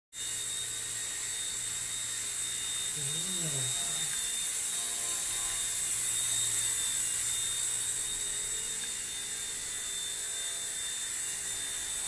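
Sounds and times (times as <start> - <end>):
rc helicopter rotor whine: 0.2 - 12.0.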